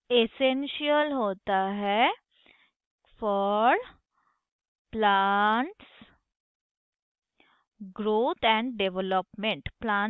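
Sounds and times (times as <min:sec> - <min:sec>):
faint breath: 0:02.3 - 0:02.8, 0:04.1 - 0:04.5, 0:07.4 - 0:07.8
person speaking: 0:07.8 - 0:10.0.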